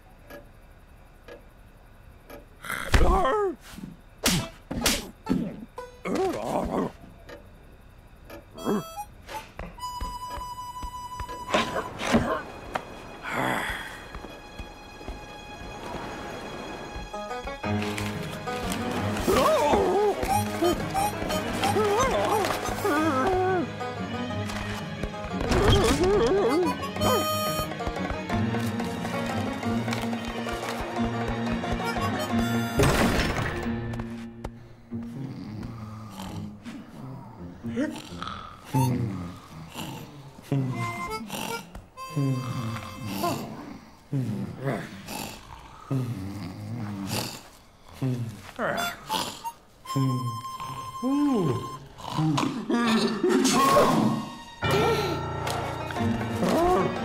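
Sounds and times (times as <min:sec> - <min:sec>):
soft footsteps: 0:14.0 - 0:19.4.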